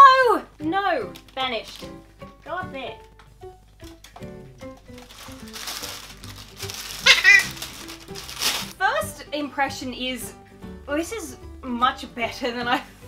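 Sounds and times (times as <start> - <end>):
background music: 0.0 - 13.0
plastic packaging crinkling: 1.1 - 2.0, 4.7 - 8.8
parrot squawk: 6.9 - 7.6.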